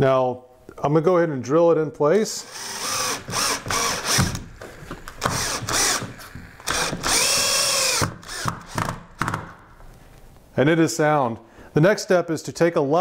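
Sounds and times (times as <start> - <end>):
cordless drill driving screws: 2.4 - 9.3.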